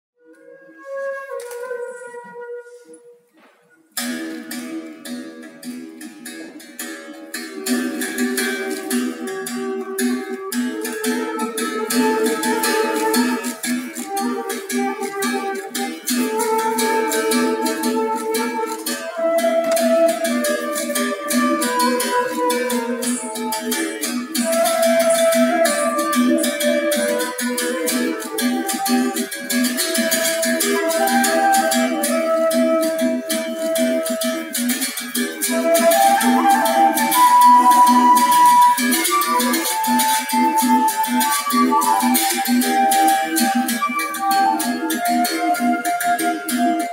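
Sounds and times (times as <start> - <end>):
flute melody: 0.2 - 5.2, 6.3 - 46.9
berimbau rhythm: 0.2 - 46.9.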